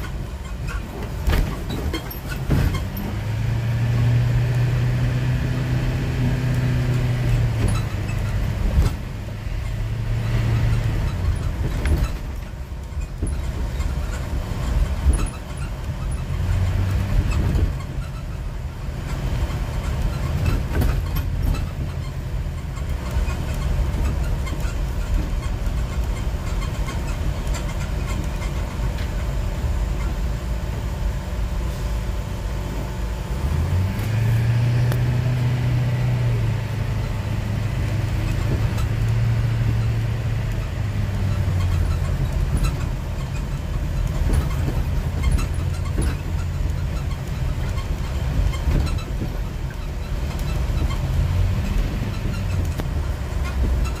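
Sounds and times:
engine and road rumble: 0.0s - 54.0s.

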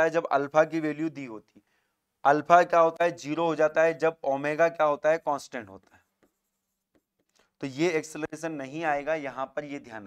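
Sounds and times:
man speaking: 0.0s - 1.5s, 2.2s - 5.9s, 7.6s - 10.0s.

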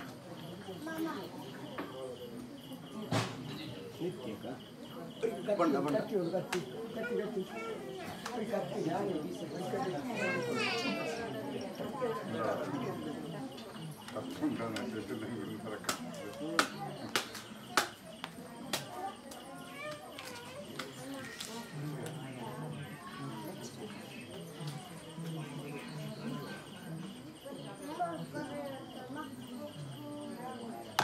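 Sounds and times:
crickets chirping: 0.0s - 31.0s
faint voices murmuring: 0.0s - 31.0s.

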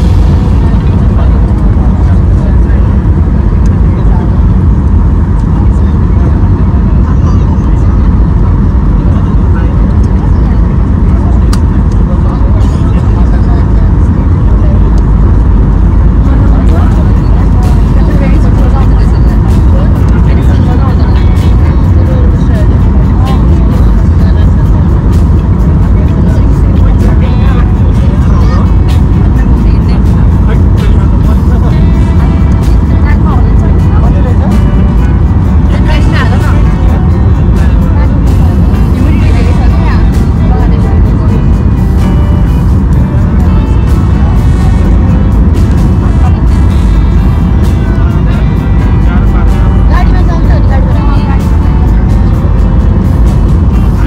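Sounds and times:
airplane cabin engine rumble: 0.0s - 54.0s.

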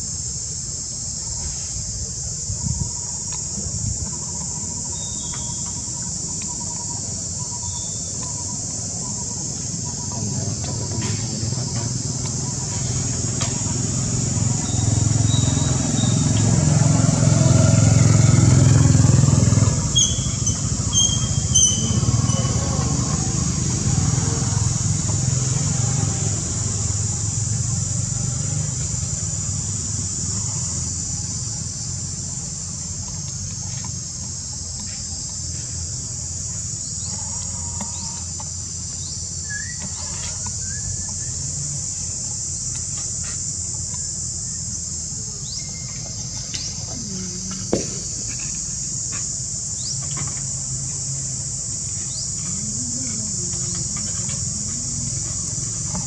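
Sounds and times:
high-pitched insect chorus: 0.0s - 56.0s
vehicle engine rumble: 0.0s - 56.0s.

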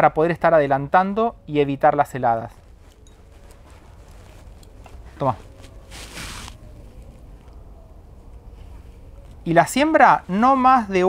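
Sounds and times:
rustle of corn kernels: 2.6s - 7.0s.

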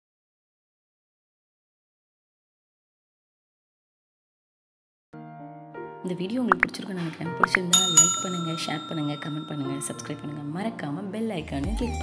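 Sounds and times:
bell-like ding: 7.7s - 10.7s.

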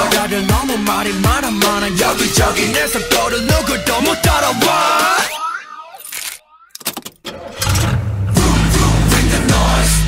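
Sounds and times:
car engine starting: 7.2s - 10.0s.

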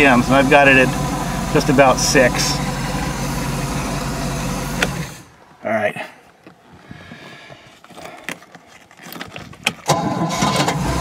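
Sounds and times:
boat engine starting and running: 0.0s - 5.4s, 9.9s - 11.0s.

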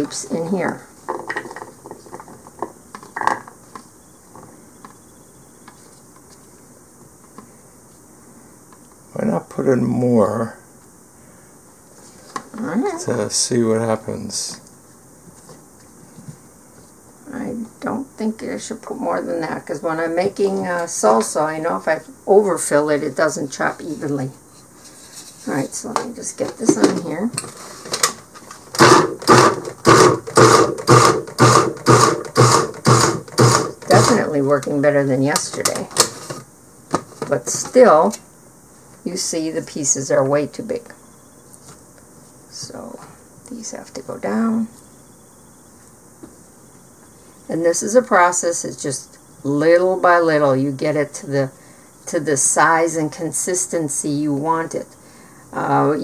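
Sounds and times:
electric food chopper pulsing: 28.8s - 34.3s.

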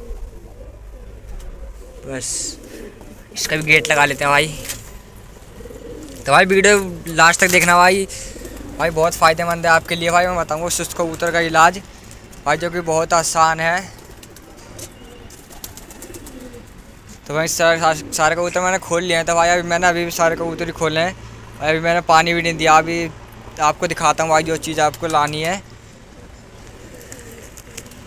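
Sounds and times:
pigeons cooing softly: 0.0s - 21.6s, 23.2s - 28.0s.

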